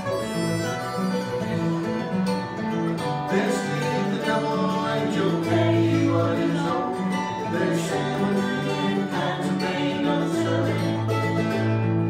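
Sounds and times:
acoustic band playing bluegrass: 0.0s - 12.0s
bass line: 0.0s - 12.0s
guitar: 0.0s - 12.0s.

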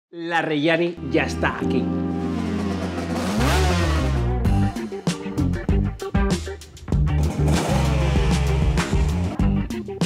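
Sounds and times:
motorcycle engine revving: 2.1s - 4.5s, 7.2s - 9.4s.

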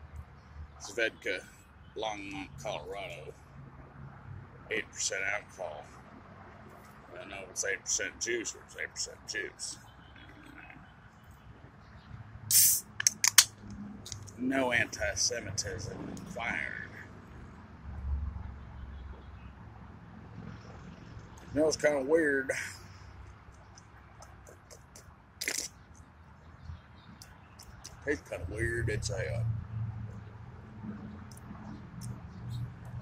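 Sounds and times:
brief noisy burst: 12.5s - 13.0s
can opening hiss: 12.5s - 13.5s, 25.4s - 25.7s
can tab clicks: 12.5s - 13.5s
wet mouth clicks: 12.5s - 14.4s, 23.5s - 26.1s, 27.2s - 28.0s
person sipping and swallowing: 25.4s - 25.7s.

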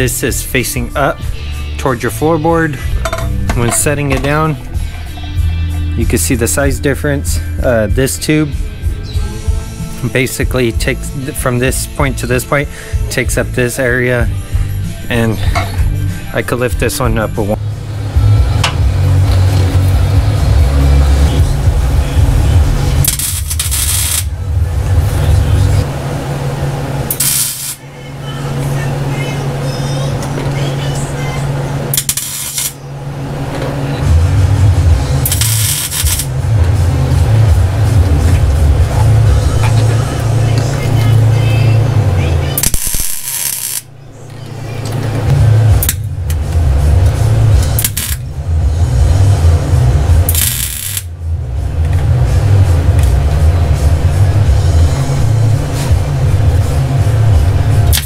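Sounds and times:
background music with bass line: 0.0s - 25.9s, 33.7s - 58.0s
welding crackle: 23.0s - 24.3s, 27.1s - 27.8s, 32.0s - 32.8s, 35.2s - 36.3s, 42.6s - 43.9s, 47.8s - 48.2s, 50.3s - 51.1s.

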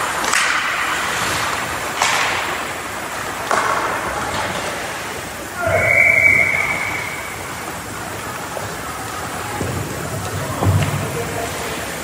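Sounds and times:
ice hockey skating and play: 0.0s - 12.0s.

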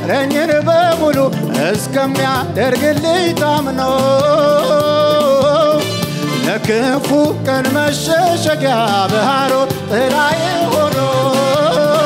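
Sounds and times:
worship song with band: 0.0s - 12.0s.

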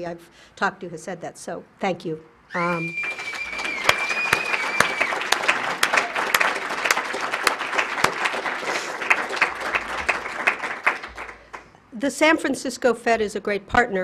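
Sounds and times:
audience applauding: 2.9s - 11.7s.

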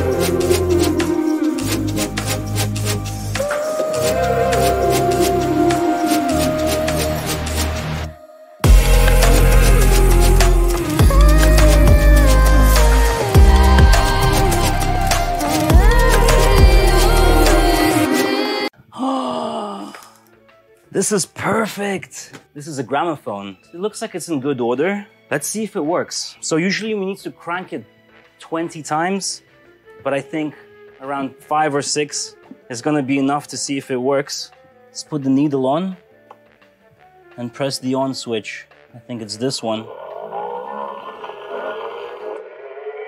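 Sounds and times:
gramophone music: 0.0s - 18.7s
man's falling ooh: 18.9s - 20.3s.

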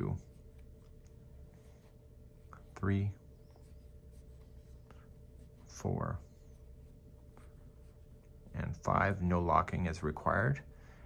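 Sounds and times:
yarn rubbing over knitting needles: 0.0s - 10.4s.

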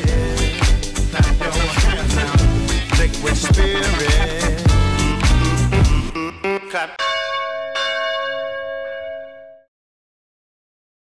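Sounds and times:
bell-like chime ringing: 7.0s - 9.7s.

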